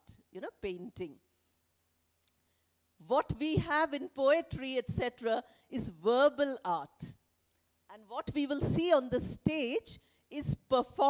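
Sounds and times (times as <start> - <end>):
woman speaking into microphone: 3.1 - 7.2, 8.0 - 11.0.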